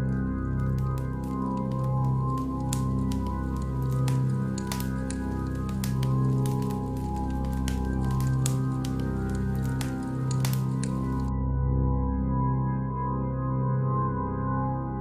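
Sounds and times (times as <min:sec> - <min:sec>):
wood bonfire crackling: 0:00.0 - 0:11.3.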